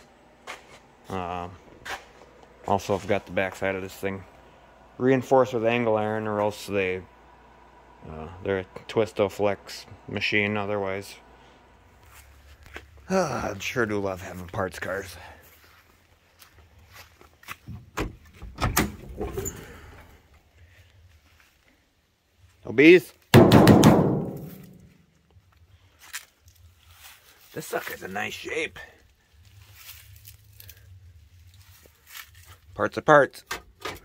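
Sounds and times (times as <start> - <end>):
low steady hum: 0.0 - 33.1
person speaking: 1.0 - 1.8, 2.5 - 7.2, 8.0 - 15.6, 27.5 - 29.0
hollow bang on sheet metal: 23.4 - 24.8.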